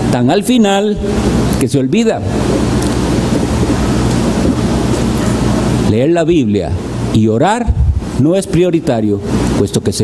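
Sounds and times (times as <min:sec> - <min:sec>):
man speaking: 0:00.0 - 0:02.4, 0:05.9 - 0:10.0
loud steady rushing noise: 0:00.0 - 0:10.0
low hum: 0:00.9 - 0:08.2.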